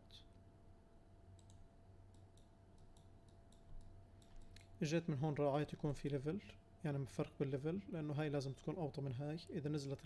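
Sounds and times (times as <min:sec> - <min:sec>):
low steady hum: 0:00.0 - 0:10.0
computer mouse clicks: 0:01.4 - 0:04.7.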